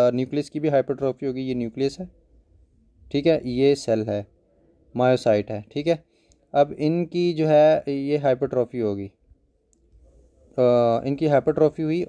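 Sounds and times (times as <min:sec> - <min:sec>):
man speaking: 0:00.0 - 0:02.2, 0:03.0 - 0:09.2, 0:10.4 - 0:12.0
faint click: 0:09.7 - 0:10.1.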